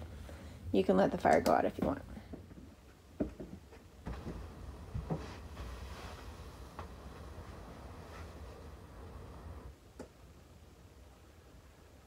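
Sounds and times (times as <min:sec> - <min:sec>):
knocks and rustles on wooden chair: 0:02.4 - 0:08.3
low steady rumble: 0:04.0 - 0:12.0.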